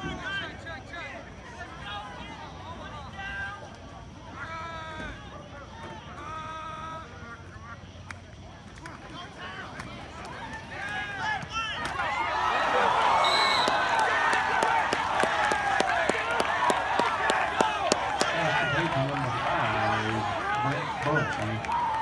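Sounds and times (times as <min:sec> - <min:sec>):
crowd cheering and shouting: 0:09.2 - 0:22.0
crowd clapping: 0:11.8 - 0:22.0.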